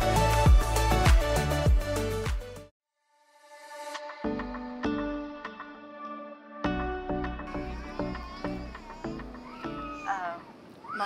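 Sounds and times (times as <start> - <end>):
soft background music: 3.5 - 10.5.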